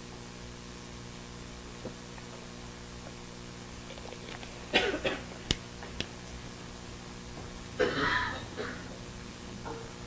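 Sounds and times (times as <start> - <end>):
low electrical hum: 0.0 - 10.0
person coughing: 4.7 - 5.3, 7.8 - 9.0.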